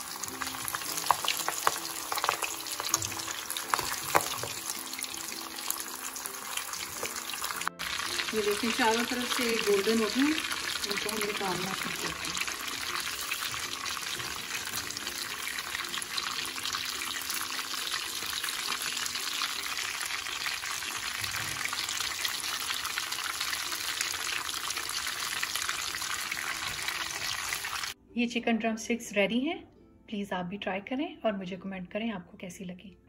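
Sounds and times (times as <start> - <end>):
chicken deep-frying in oil: 0.0 - 28.0.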